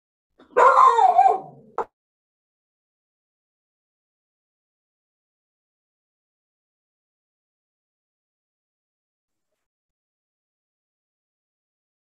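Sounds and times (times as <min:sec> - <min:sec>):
dog barking: 0:00.4 - 0:01.9.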